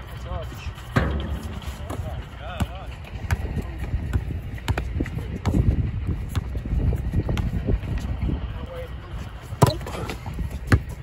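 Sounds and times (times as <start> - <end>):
basketball bouncing: 2.6 - 5.7, 9.6 - 11.0.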